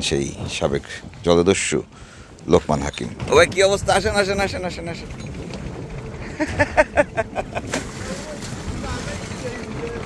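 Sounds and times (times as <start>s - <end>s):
boat engine rumble: 0.0s - 10.0s
water rushing along boat hull: 0.0s - 10.0s.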